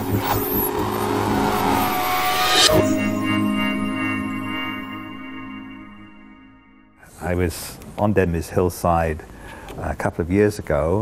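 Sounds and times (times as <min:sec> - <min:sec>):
whoosh of noise: 0:00.0 - 0:06.4
low sustained tones: 0:00.0 - 0:07.0.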